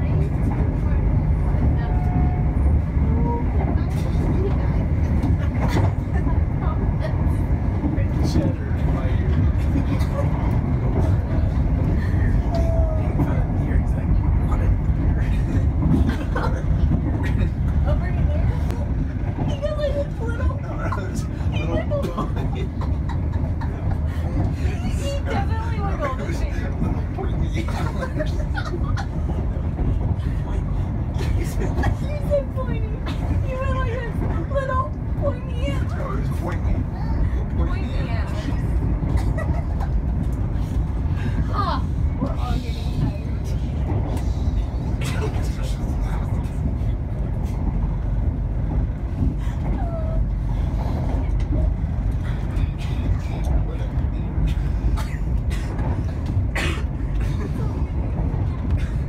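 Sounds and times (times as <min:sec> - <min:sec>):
train running rumble: 0:00.0 - 0:59.0.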